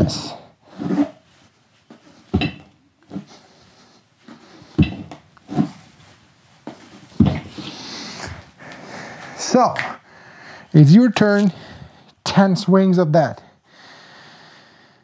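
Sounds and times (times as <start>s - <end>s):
man breathing hard: 7.5s - 10.7s, 11.5s - 12.2s, 13.4s - 15.0s.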